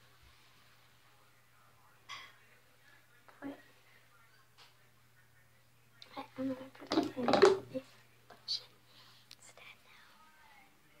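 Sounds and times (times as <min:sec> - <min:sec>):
faint whisper: 0:07.8 - 0:11.0.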